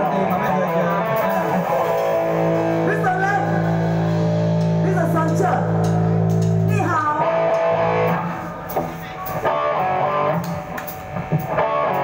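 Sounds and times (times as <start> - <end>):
live rock band: 0.0 - 12.0
drum or cymbal hits: 1.1 - 6.8.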